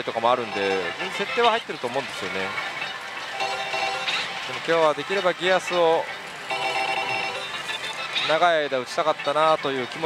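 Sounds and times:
slot machine electronic ringing: 0:00.3 - 0:01.6, 0:02.2 - 0:08.4.

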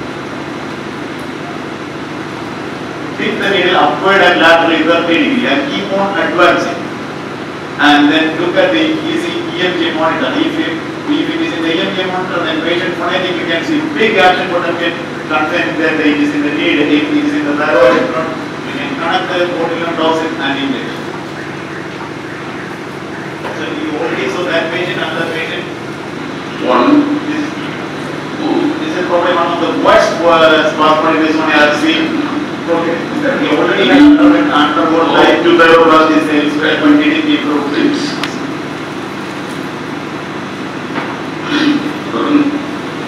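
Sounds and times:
room hum and hiss: 0:00.0 - 0:43.0.

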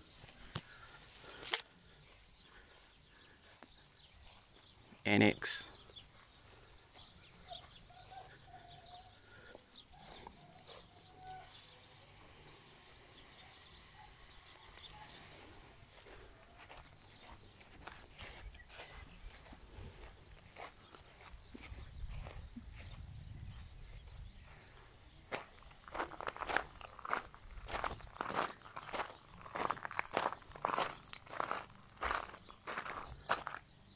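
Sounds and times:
footsteps on grass: 0:00.0 - 0:33.9.

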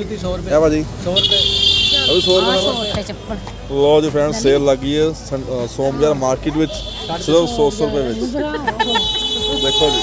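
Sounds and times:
vehicle horn blast: 0:01.2 - 0:03.8, 0:06.7 - 0:08.2, 0:08.8 - 0:10.0.

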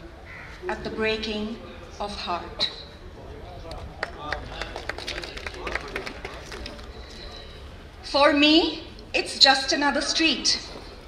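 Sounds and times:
faint murmured voices: 0:00.0 - 0:11.0
scattered clapping: 0:03.7 - 0:07.2.

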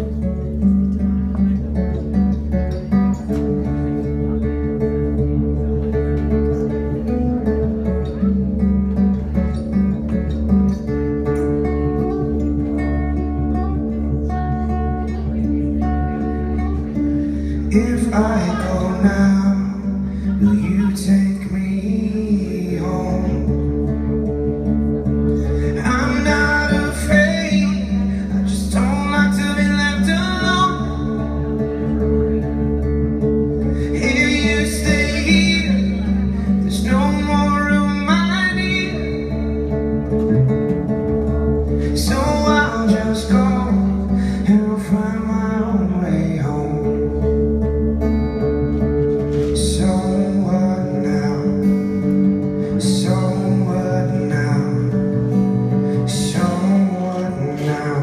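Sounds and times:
acoustic guitar strumming: 0:00.0 - 0:58.0
man singing: 0:14.8 - 0:32.6, 0:33.6 - 0:40.2, 0:41.7 - 0:47.9, 0:49.3 - 0:58.0.

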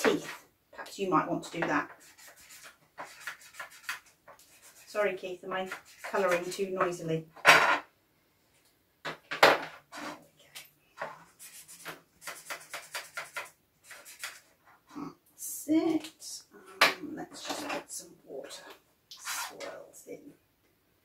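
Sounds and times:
pen scratching on cardboard: 0:01.9 - 0:04.9, 0:05.6 - 0:06.5, 0:11.3 - 0:14.5.

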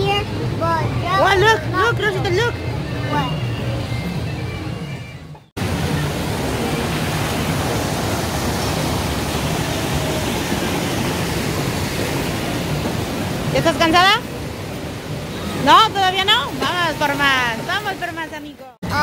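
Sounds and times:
faint voices: 0:00.0 - 0:08.2
water rushing over rocks: 0:05.6 - 0:19.0.

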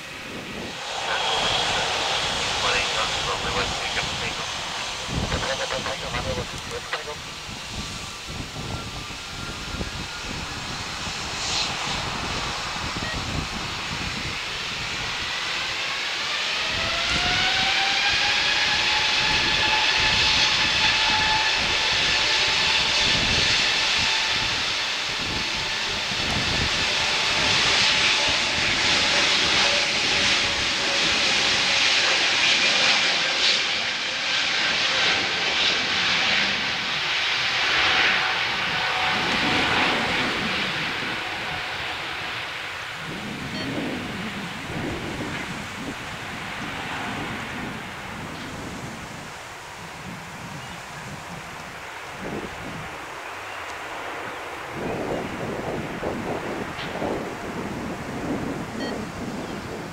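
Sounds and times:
jet noise rush: 0:00.0 - 0:50.5
jet engines spooling up whine: 0:00.0 - 0:59.9.

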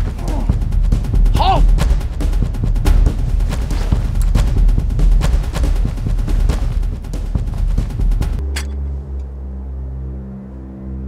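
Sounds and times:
ominous low music drone: 0:07.1 - 0:11.0.

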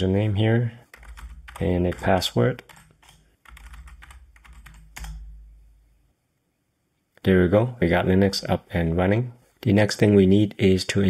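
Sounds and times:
typing on computer keyboard: 0:00.9 - 0:05.3.

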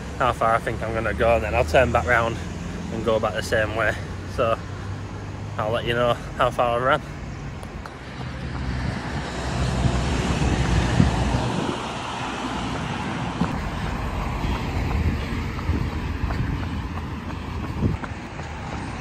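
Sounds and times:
traffic noise: 0:00.0 - 0:19.0
wind rushing over microphone: 0:07.5 - 0:19.0
faint footfalls: 0:13.4 - 0:19.0.

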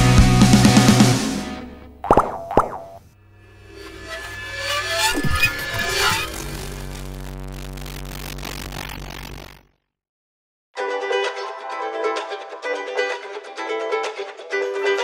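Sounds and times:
falling plop sound effects: 0:02.0 - 0:03.0.

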